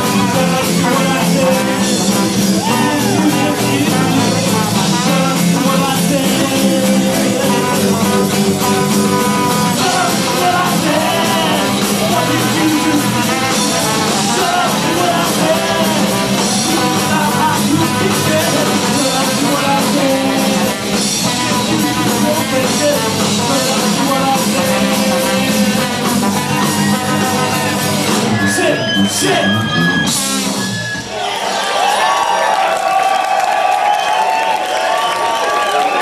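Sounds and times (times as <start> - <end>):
drum beat: 0.0 - 29.4
horn holding long notes: 0.0 - 31.1
guitar: 0.0 - 31.2
ska band playing: 0.0 - 36.0.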